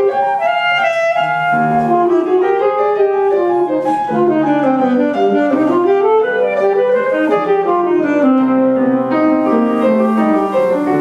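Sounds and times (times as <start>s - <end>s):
piano accompaniment: 0.0s - 11.0s
saxophone melody: 0.0s - 11.0s.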